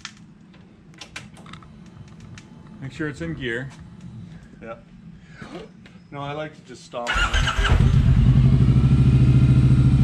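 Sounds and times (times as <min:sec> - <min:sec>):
motorcycle engine idling: 0:07.2 - 0:10.0.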